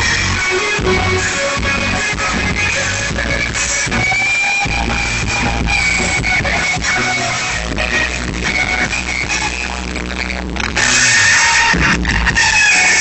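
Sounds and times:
live rock band with electric guitars: 0.0 - 13.0.

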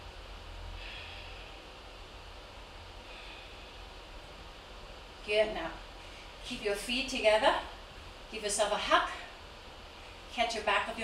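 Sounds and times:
low hum: 0.0 - 10.6
person breathing softly: 0.8 - 1.8, 3.0 - 4.0.

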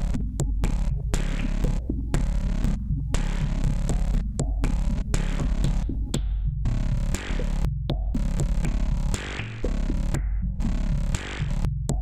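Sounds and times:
deep synth bass throbbing: 0.0 - 12.0.

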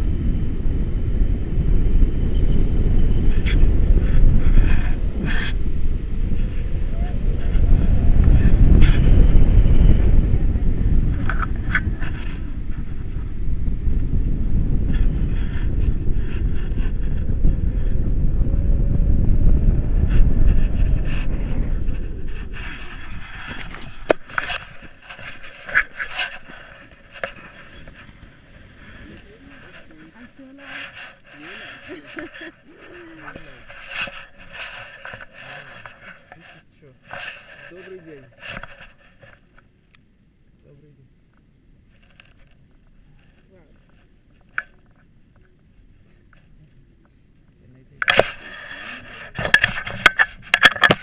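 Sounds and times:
wind buffeting microphone: 0.0 - 40.5, 41.1 - 51.0
faint voices: 14.9 - 38.9
clicks and rustles of gear: 48.0 - 51.0.

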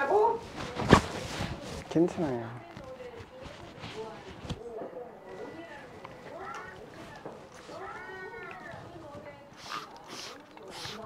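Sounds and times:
spray bottle spritzing water: 9.6 - 11.0.

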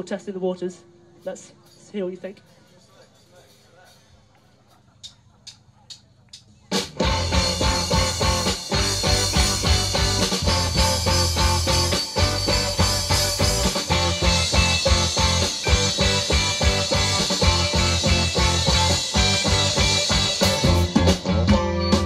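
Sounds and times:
drum kit: 1.1 - 22.0
electric bass: 6.8 - 22.0
electric guitars: 6.8 - 22.0.

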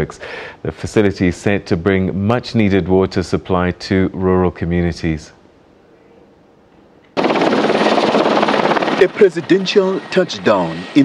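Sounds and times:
helicopter rotor and engine: 7.2 - 11.0.

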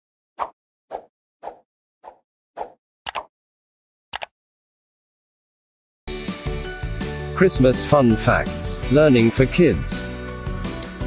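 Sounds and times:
quick double click: 3.1 - 3.3.

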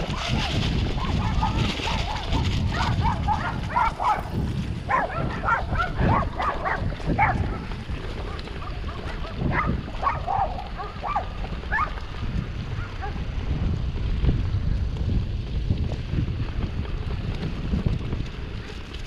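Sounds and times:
bike tyres rolling over grass: 0.0 - 19.0
wind rumble: 0.0 - 19.0
dog barking: 1.0 - 4.3, 4.9 - 7.7, 8.6 - 11.9.

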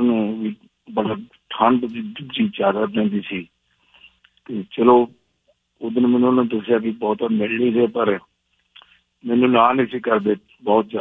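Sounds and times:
man speaking over telephone line: 0.0 - 3.5, 4.5 - 5.1, 5.8 - 8.2, 9.2 - 11.0.

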